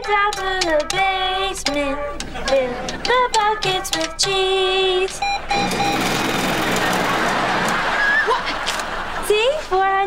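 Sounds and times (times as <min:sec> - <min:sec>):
cash machine whirring: 0:00.0 - 0:09.3
electronic keypad beeps: 0:05.2 - 0:07.1.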